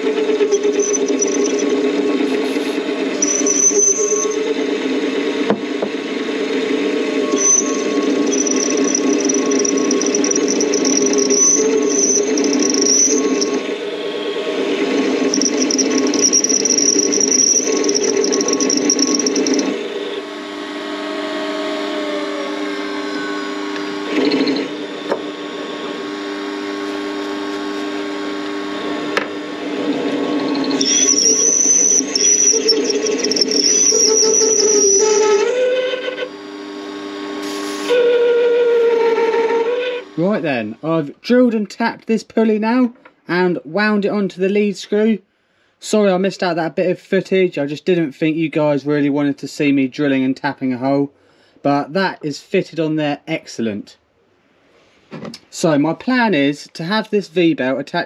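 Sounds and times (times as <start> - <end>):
high-pitched metal cutting squeal: 0.0 - 4.7, 7.0 - 19.8, 29.9 - 36.4
lathe motor whine: 0.0 - 40.2.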